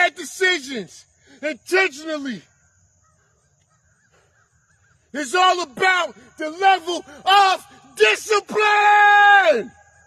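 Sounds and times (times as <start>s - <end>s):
faint distant bird calls: 0.0s - 8.0s.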